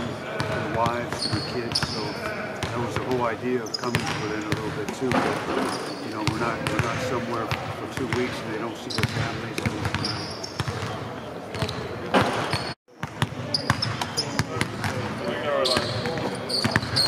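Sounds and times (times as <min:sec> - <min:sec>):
basketballs bouncing on hardwood: 0:03.9 - 0:08.3, 0:09.0 - 0:15.1.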